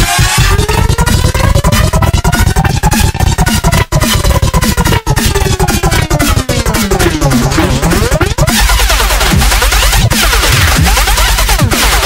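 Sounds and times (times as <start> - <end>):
electronic beat: 0.0 - 12.0
vinyl record scratching: 0.0 - 12.0.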